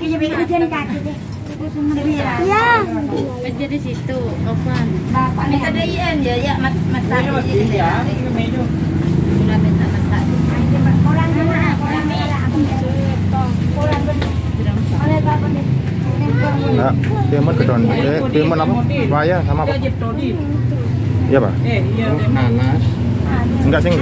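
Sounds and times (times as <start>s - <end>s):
indistinct voices talking: 0.0s - 24.0s.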